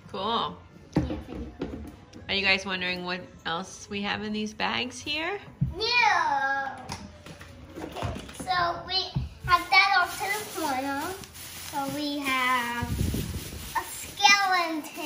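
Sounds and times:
plastic bags rustling: 9.3 - 15.0.

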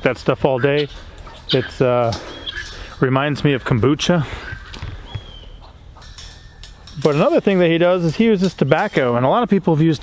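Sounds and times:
high chirp: 0.6 - 3.0, 4.5 - 5.8.

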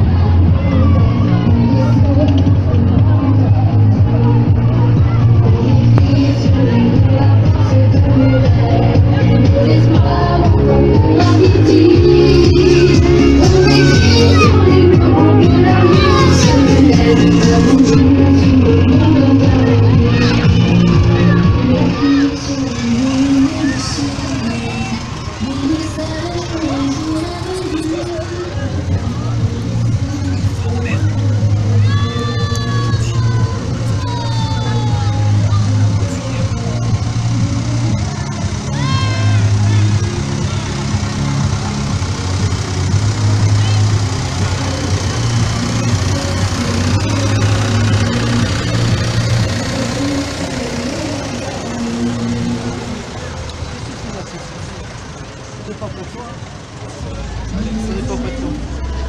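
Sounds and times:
music with stepping bass line: 0.0 - 53.3
crowd chatter: 0.0 - 59.0
tractor diesel engine running: 0.0 - 59.0.

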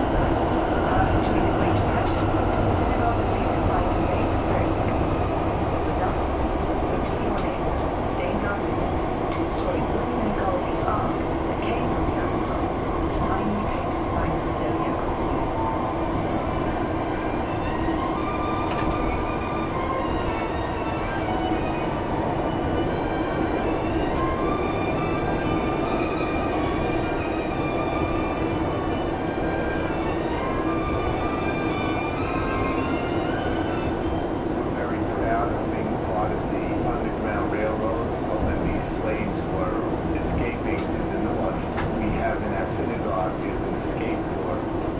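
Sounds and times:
electric train rumbling in tunnel: 0.0 - 44.9.

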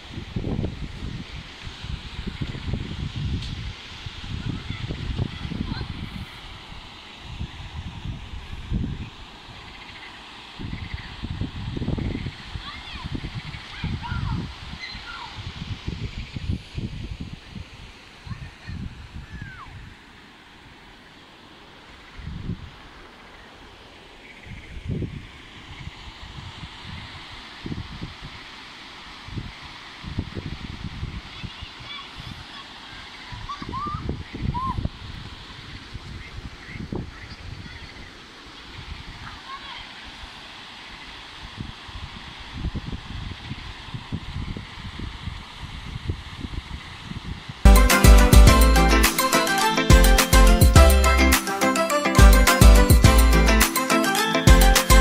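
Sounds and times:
wind buffeting microphone: 0.0 - 9.8, 10.6 - 20.0, 24.5 - 28.4, 29.3 - 32.4, 33.3 - 39.4, 41.4 - 47.7
stream rushing over rocks: 0.0 - 22.0, 25.3 - 33.9.

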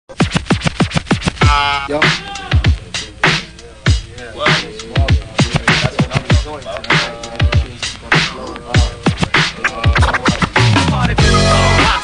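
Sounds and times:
turntable scratching: 0.1 - 12.0.

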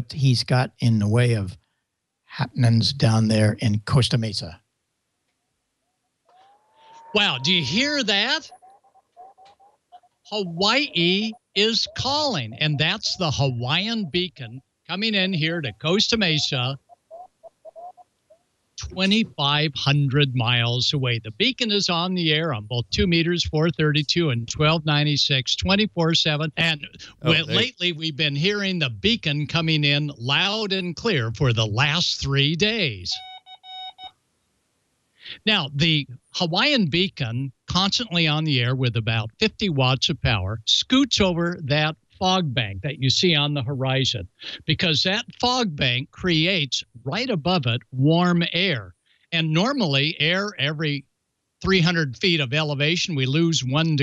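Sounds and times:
faint whistle-like radio tone: 10.4 - 16.6
morse code beeps: 33.2 - 34.1.

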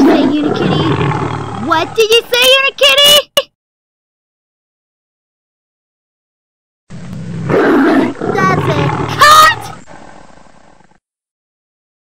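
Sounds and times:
angry growling roar: 0.0 - 2.0, 6.9 - 11.0.

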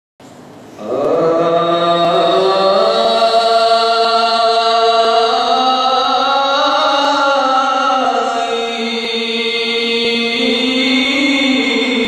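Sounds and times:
man chanting a religious lament: 0.8 - 12.0.

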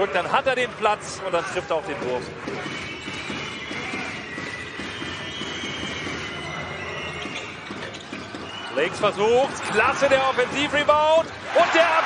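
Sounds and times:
crowd noise: 0.0 - 12.0
sneakers squeaking on court: 2.0 - 11.6.

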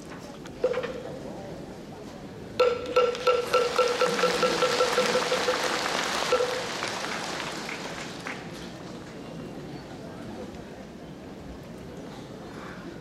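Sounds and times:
crowd applause: 3.1 - 9.2.

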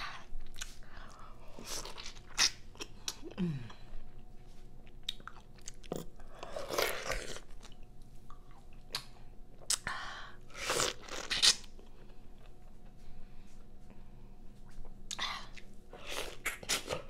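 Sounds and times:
chewing crunchy fruit: 0.4 - 9.9, 10.5 - 13.0.

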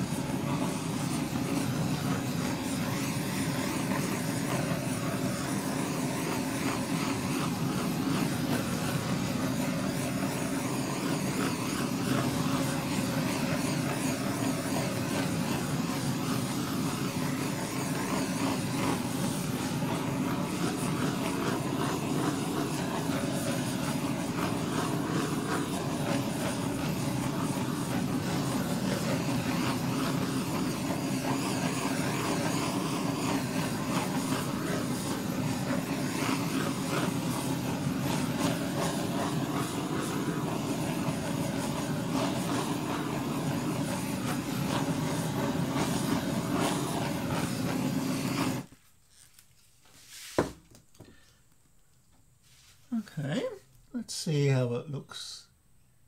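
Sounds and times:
blowtorch flame hissing: 0.0 - 49.3, 50.0 - 51.4.

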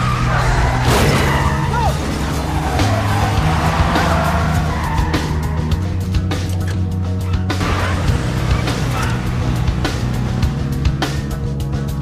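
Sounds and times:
car engine: 0.0 - 12.0
tyres skidding: 0.0 - 12.0
action music with low beat: 0.1 - 12.0.

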